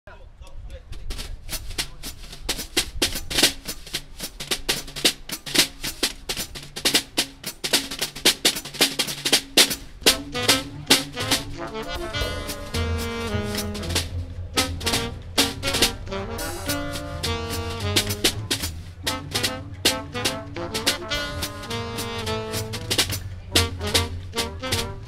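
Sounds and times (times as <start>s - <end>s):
jazz drum kit solo: 1.0s - 25.0s
pitched notes: 10.0s - 25.0s.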